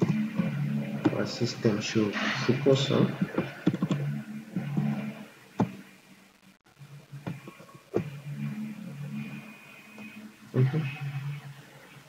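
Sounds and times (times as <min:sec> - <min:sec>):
low steady hum: 0:00.0 - 0:12.0
keyboard keystroke: 0:03.2 - 0:04.0.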